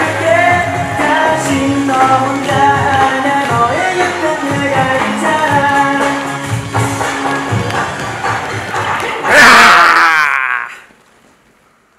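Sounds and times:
upbeat dance pop track: 0.0 - 9.4.

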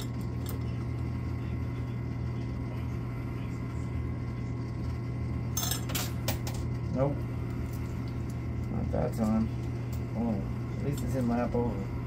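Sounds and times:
steady low hum: 0.0 - 12.0
coins clinking in machine: 5.6 - 6.6.

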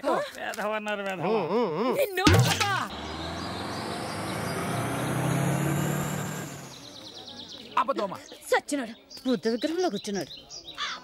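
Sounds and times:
vehicle driving past: 2.8 - 7.4.

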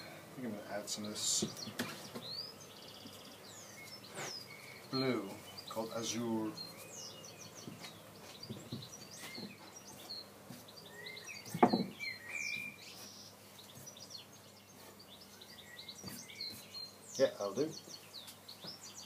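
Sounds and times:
small birds chirping: 0.0 - 19.0
sharp knock: 11.6 - 11.9.

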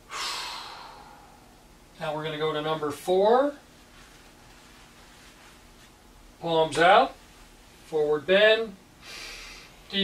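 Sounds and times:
man exhaling deeply: 0.0 - 1.6.

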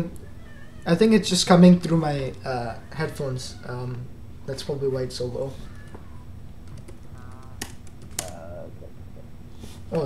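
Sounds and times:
keyboard keystrokes clicking: 6.6 - 8.4
person speaking: 8.2 - 9.3.

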